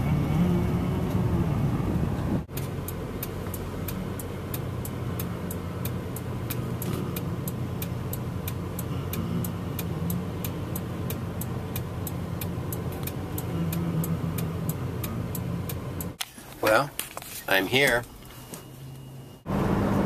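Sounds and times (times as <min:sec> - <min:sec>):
car engine hum inside cabin: 0:00.0 - 0:20.0
regular sharp clicking: 0:02.5 - 0:16.3.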